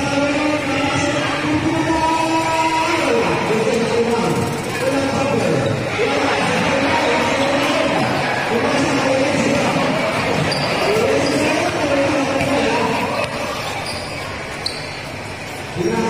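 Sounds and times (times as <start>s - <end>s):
crowd chatter and shouts: 0.0s - 16.0s.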